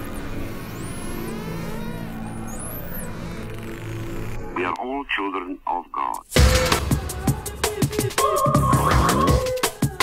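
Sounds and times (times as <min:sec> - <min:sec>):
high whistling synth sweeps: 0:00.0 - 0:04.2.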